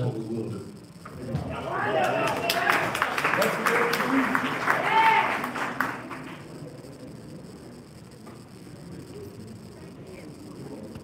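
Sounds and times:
audience applause: 0:01.5 - 0:06.5.

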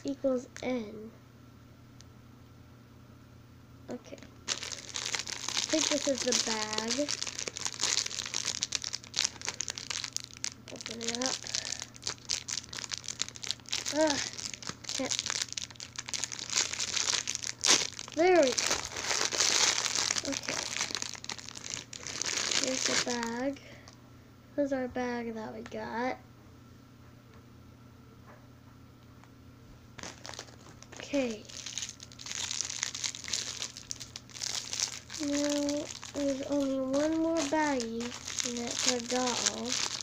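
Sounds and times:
plastic bag crinkling: 0:04.2 - 0:23.5, 0:30.0 - 0:40.0.

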